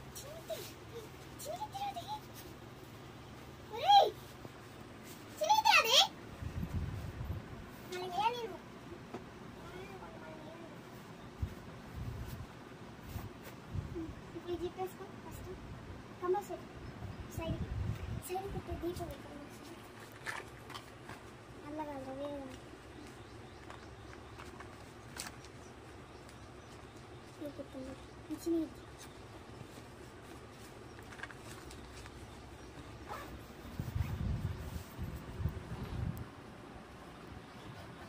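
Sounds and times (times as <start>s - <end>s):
rustling: 22.4s - 36.0s.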